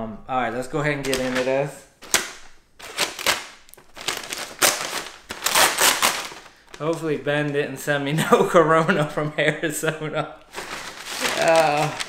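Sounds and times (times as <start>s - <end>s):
thin plastic crinkling: 1.0s - 7.6s, 10.4s - 12.0s.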